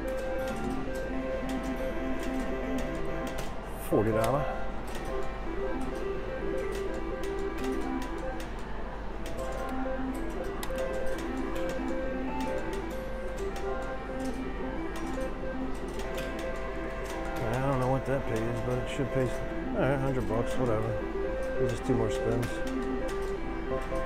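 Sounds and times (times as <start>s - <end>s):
slot machine reels ticking: 0.0s - 24.0s
slot machine win counting: 0.0s - 24.0s.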